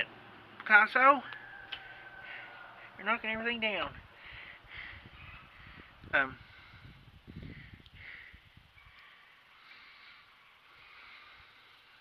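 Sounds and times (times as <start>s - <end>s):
distant bird calls: 4.1s - 12.0s.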